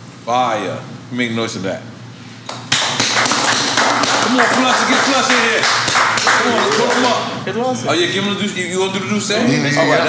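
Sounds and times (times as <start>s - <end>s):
people clapping and banging table: 2.5s - 7.2s.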